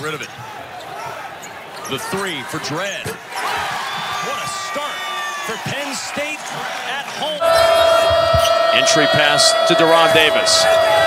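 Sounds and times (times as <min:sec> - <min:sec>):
arena noise: 0:00.0 - 0:11.0
loud held tone: 0:07.4 - 0:11.0.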